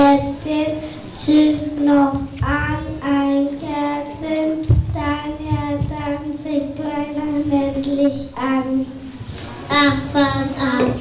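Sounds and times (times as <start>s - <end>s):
low thump: 4.7s - 6.0s.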